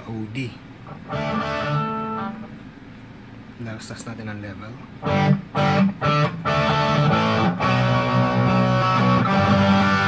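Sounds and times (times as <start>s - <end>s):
overdriven electric guitar chord: 1.1s - 2.5s, 5.0s - 10.0s.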